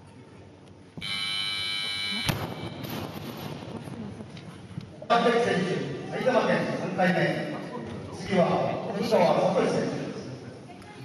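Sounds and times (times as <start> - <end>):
electronic buzzer: 1.0 - 2.9.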